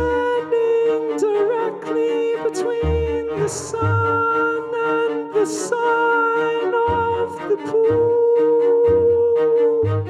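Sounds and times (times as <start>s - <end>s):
backing track: 0.0s - 10.0s
person singing long notes: 0.0s - 10.0s.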